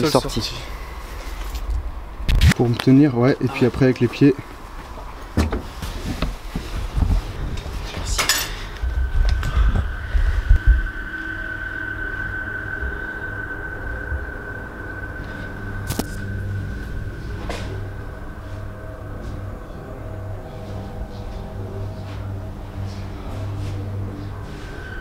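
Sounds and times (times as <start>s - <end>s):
low hum: 0.0s - 25.0s
steady high tone: 7.6s - 25.0s.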